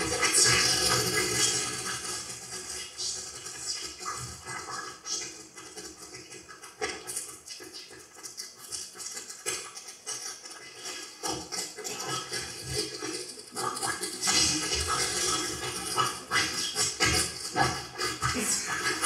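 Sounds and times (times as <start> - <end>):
animal-like vocal sounds: 0.0 - 19.0.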